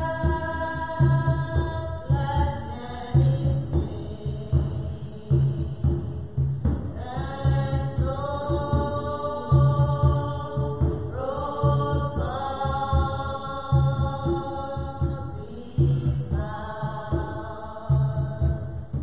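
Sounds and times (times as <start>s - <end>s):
hand drum low strokes: 0.0s - 19.0s
slow hymn singing: 0.0s - 19.0s.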